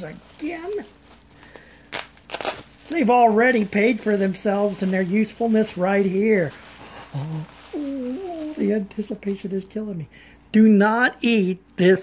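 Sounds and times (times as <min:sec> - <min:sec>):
bubble wrap crinkling: 0:00.0 - 0:10.0.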